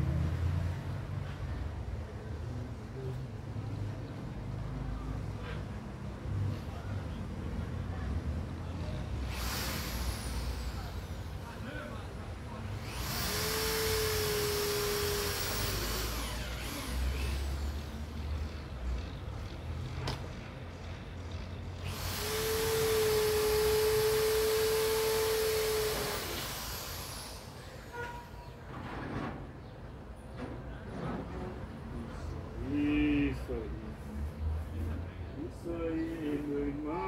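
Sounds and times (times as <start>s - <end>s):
loud hiss: 9.2s - 11.6s, 21.8s - 28.2s
motor humming: 9.3s - 11.1s, 12.8s - 17.9s, 21.8s - 27.6s.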